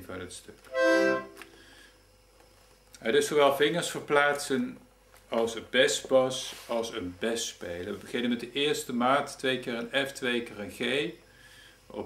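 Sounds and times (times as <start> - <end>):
accordion short held tone: 0.7 - 1.4.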